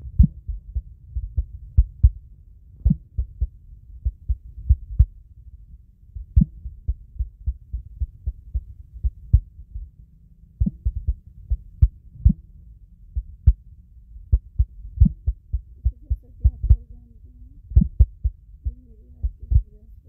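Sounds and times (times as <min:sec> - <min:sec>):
dull low thuds: 0:00.0 - 0:05.4, 0:06.1 - 0:10.0, 0:10.6 - 0:19.8
steady low hum: 0:00.0 - 0:20.0.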